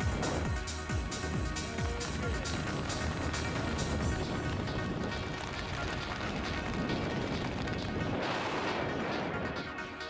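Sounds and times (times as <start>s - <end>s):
wind buffeting microphone: 0.0s - 9.8s
background music: 0.0s - 10.0s.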